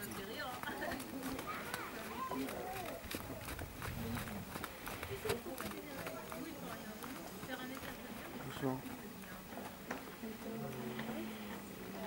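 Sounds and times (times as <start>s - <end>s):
horse hoofbeats on sand: 0.0s - 9.3s
quiet voices talking: 0.0s - 12.0s.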